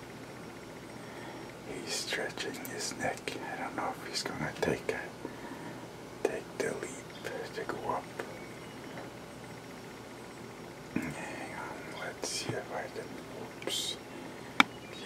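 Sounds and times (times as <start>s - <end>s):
man whispering: 1.7s - 5.2s, 6.2s - 8.4s, 10.9s - 14.3s.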